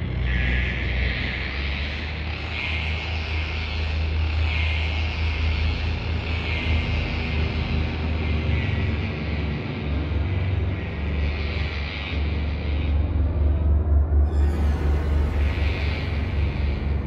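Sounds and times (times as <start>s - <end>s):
dark droning background music: 0.0s - 17.0s.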